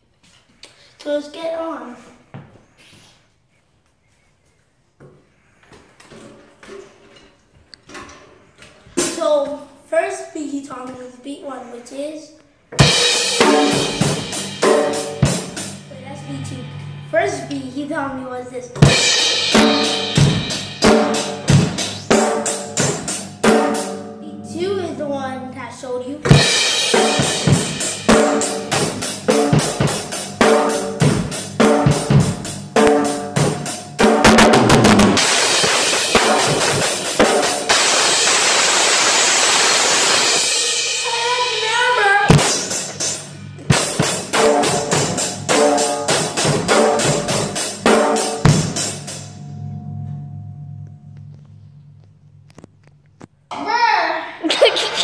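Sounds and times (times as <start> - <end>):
child playing drum kit: 7.9 - 9.6, 12.7 - 25.0, 26.2 - 49.4
cymbals ringing: 12.8 - 25.2, 26.3 - 51.7.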